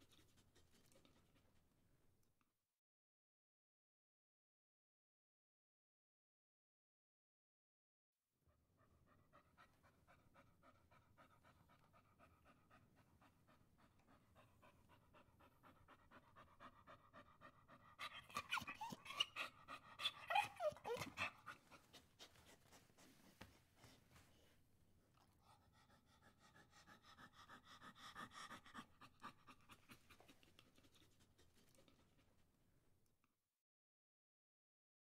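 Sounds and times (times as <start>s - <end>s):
dog panting: 8.8s - 24.5s, 25.2s - 32.4s
dog whining: 18.0s - 21.8s.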